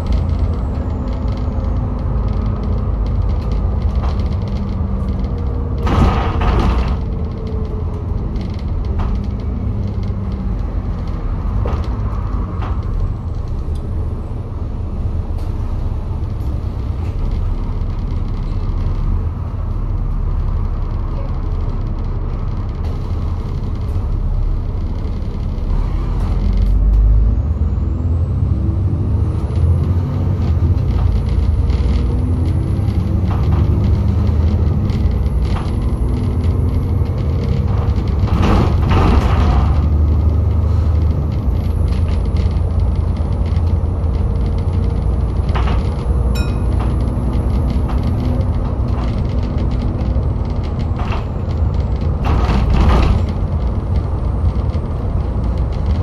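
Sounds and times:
bus diesel engine: 0.0s - 56.0s
high whine: 46.3s - 47.2s.

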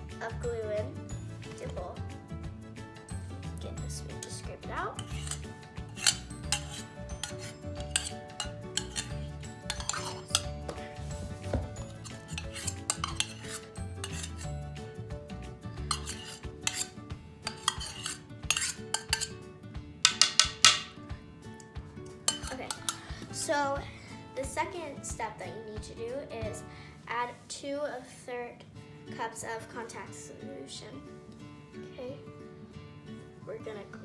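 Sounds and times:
metal spoon scraping metal cup: 4.2s - 14.6s, 15.8s - 19.4s, 22.3s - 23.0s.

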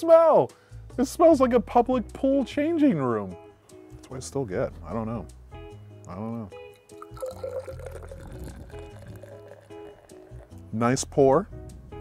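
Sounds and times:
instrumental background music: 0.0s - 12.0s
beer pouring into glass: 6.6s - 10.9s.

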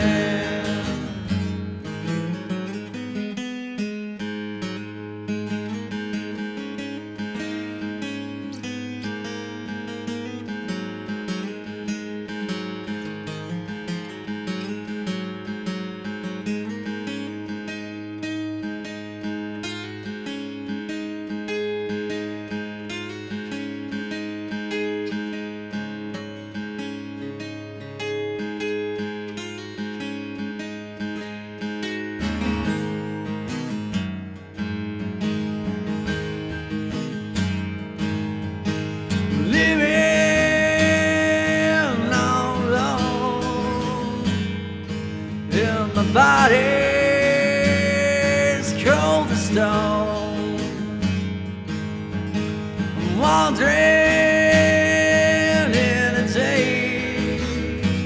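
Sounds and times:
acoustic guitar picking and strumming: 0.0s - 58.0s.

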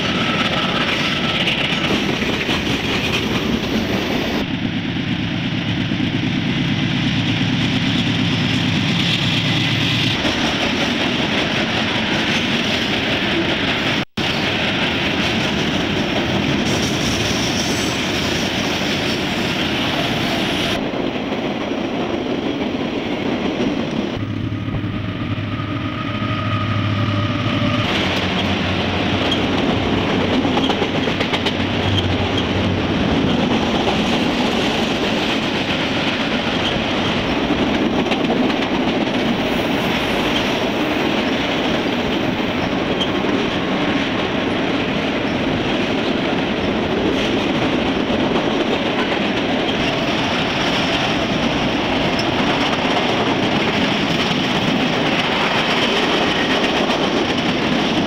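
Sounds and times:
train wheels rolling on track: 0.0s - 58.0s.

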